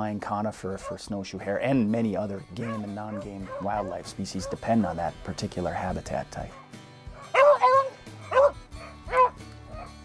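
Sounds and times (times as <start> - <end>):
background music: 0.0 - 10.0
dog barking: 0.8 - 1.0, 2.6 - 4.8, 6.5 - 10.0.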